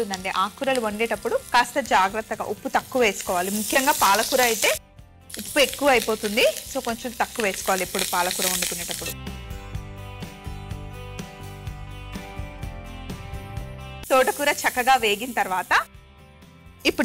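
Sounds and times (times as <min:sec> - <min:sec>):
leaves sizzling in hot oil: 0:00.0 - 0:09.2, 0:14.0 - 0:15.9
instrumental background music: 0:00.0 - 0:17.0.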